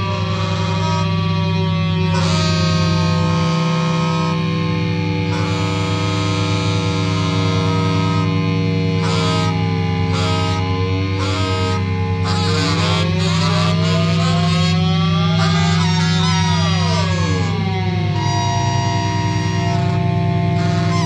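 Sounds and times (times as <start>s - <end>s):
rock band playing a drone: 0.0s - 21.0s
pitched lines gliding upward: 9.1s - 21.0s.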